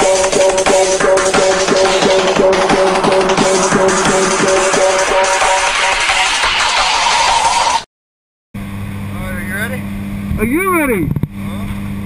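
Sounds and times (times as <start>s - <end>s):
piston engine droning in cabin: 8.6s - 12.0s
man calling out: 10.4s - 11.1s.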